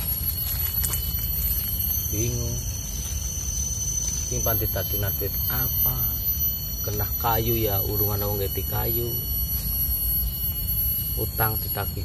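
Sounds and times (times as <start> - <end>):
low rumble: 0.0 - 11.7
high-pitched insect drone: 0.0 - 12.0.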